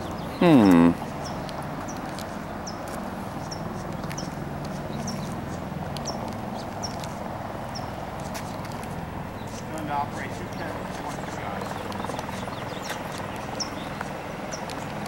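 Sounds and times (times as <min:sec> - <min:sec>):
footsteps on asphalt: 0:00.9 - 0:15.0.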